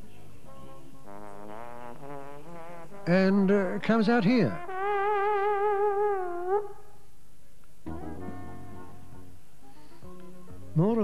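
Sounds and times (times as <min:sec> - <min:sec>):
organ pipe note blown by mouth: 0:00.3 - 0:07.0, 0:07.9 - 0:11.0.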